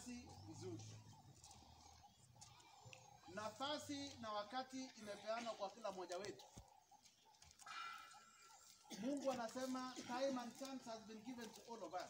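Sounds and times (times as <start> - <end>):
faint pitched animal call: 7.6 - 8.8.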